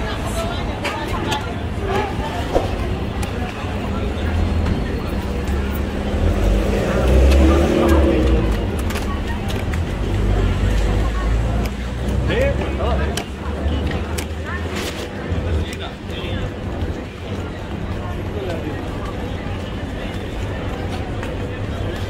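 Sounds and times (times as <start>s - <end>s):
road traffic rumble: 0.0s - 22.0s
voices of passers-by: 0.0s - 22.0s.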